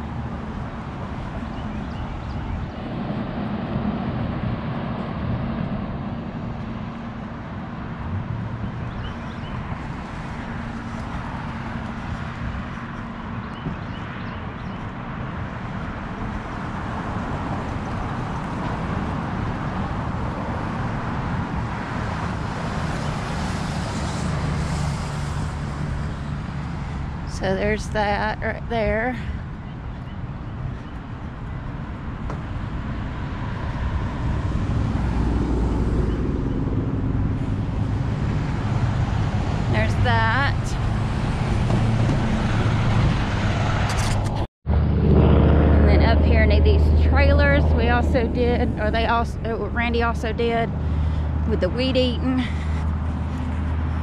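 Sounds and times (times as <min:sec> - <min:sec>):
road traffic engine hum: 0:00.0 - 0:54.0.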